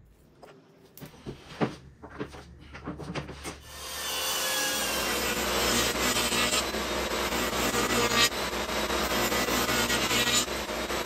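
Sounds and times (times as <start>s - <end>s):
table saw cutting plywood: 3.6s - 11.0s.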